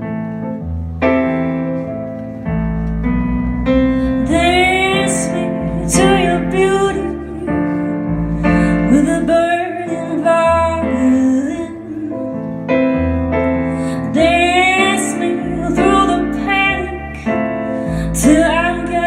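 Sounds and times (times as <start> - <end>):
keyboard piano: 0.0 - 19.0
woman singing a slow song: 4.2 - 13.1, 13.9 - 19.0.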